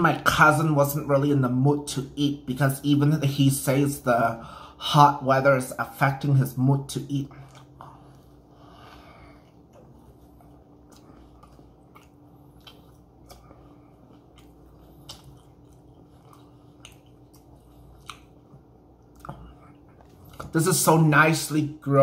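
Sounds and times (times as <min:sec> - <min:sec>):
low steady hum: 0:00.0 - 0:22.0
faint chewing: 0:07.2 - 0:20.9.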